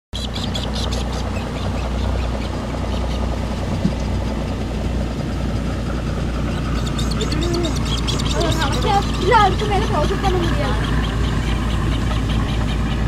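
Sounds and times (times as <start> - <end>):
engine droning: 0.2 - 13.0
rapid high chirps: 6.4 - 13.0.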